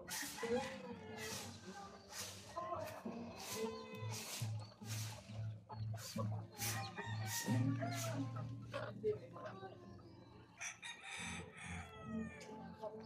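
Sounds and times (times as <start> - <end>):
rooster crowing: 0.1 - 1.5, 6.7 - 8.3, 10.6 - 12.5.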